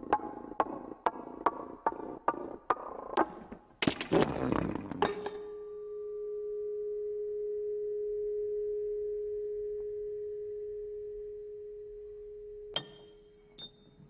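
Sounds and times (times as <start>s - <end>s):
metal part ringing tone: 12.7s - 14.0s.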